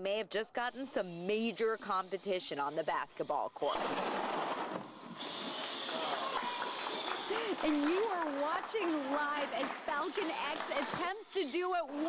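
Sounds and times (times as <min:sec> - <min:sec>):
electric motors whirring: 0:00.6 - 0:12.0.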